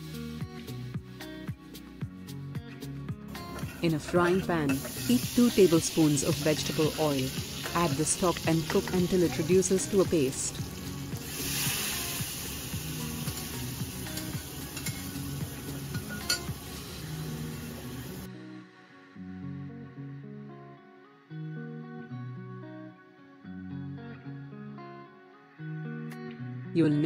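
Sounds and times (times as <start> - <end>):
background music: 0.0 - 27.0
stock sizzling in a frying pan: 4.6 - 18.3
spatula clinking: 13.3 - 15.2, 15.9 - 16.6.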